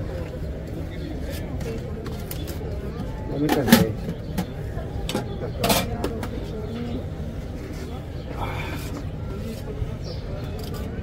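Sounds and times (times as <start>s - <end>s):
faint voices: 0.0s - 11.0s
outdoor background noise: 0.0s - 11.0s.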